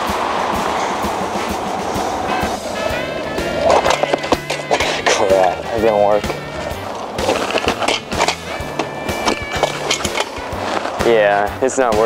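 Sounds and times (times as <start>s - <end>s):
background music with bass line: 0.0s - 12.0s
scooter wheels rolling on asphalt: 0.0s - 12.0s
scooter deck clattering: 0.5s - 11.4s.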